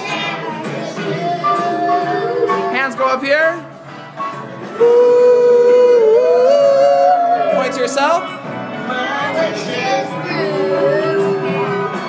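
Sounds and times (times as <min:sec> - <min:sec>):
person singing long ooh note: 0:01.0 - 0:02.7, 0:04.8 - 0:07.6, 0:10.4 - 0:12.0.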